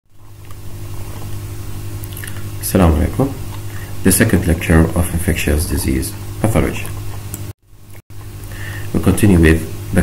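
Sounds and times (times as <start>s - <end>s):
low electrical hum with hiss: 0.1s - 10.0s.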